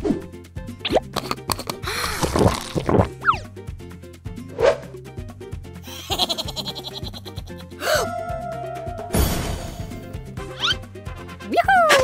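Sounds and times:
light background music: 0.0s - 12.0s
cartoon squishing sound: 0.8s - 3.4s.

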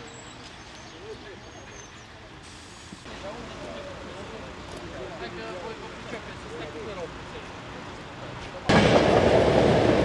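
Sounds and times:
street traffic: 0.0s - 10.0s
people chattering: 3.1s - 8.9s.

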